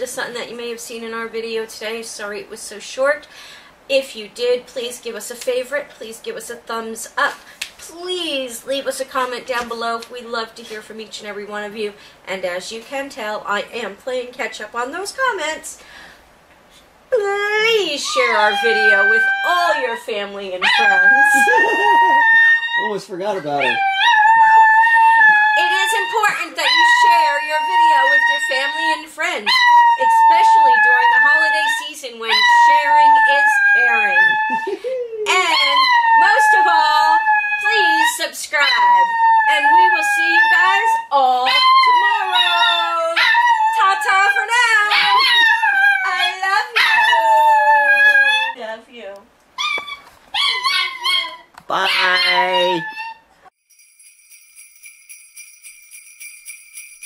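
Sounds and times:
dog howling: 18.0s - 48.6s, 49.6s - 53.3s
person howling: 18.1s - 20.0s, 20.6s - 29.0s, 32.5s - 38.2s, 51.9s - 53.2s.

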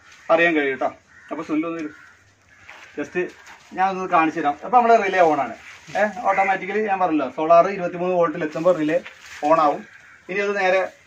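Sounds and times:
man talking: 3.0s - 11.0s.

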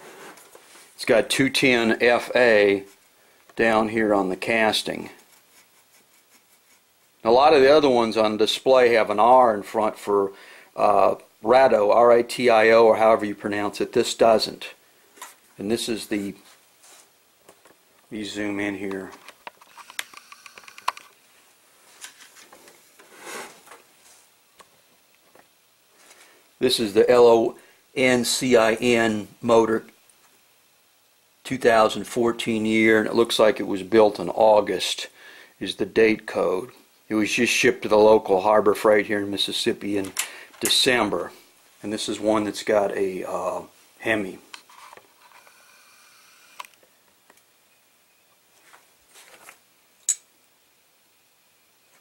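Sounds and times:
faint high hum: 0.0s - 52.0s
sharp click: 50.0s - 50.3s.

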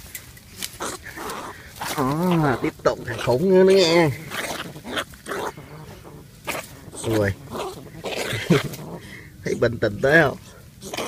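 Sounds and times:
rat hissing: 0.7s - 9.2s.

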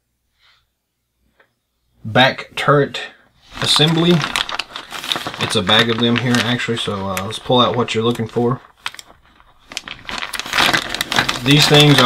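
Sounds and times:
plastic bag crinkling: 3.4s - 12.0s.

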